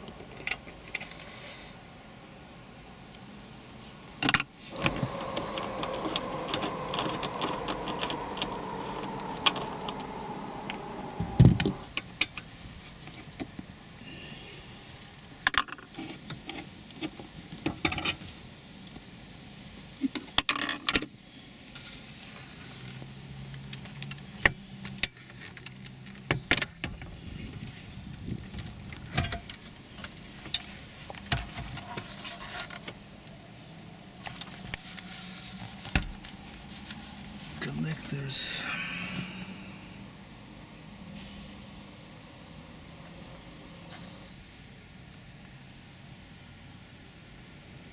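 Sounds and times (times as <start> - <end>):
power tool whirring: 4.7 - 11.9.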